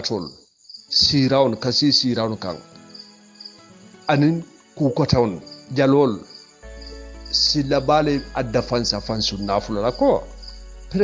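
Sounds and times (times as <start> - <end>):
man talking: 0.0 - 0.3, 0.9 - 2.6, 4.1 - 6.3, 7.3 - 10.3.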